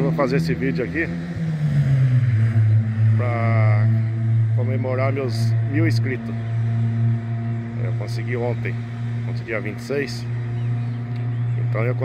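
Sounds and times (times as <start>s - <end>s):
low engine hum: 0.0s - 12.0s.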